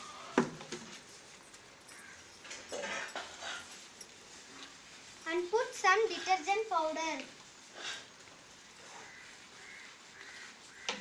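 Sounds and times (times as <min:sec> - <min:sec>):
faint bird calls: 0:08.8 - 0:11.0.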